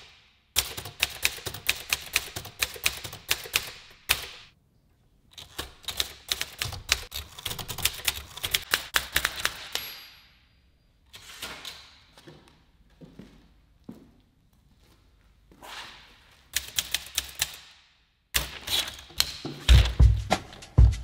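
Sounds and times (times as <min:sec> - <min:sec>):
typewriter keys clacking: 0:00.6 - 0:04.5, 0:05.4 - 0:09.8, 0:16.6 - 0:17.6.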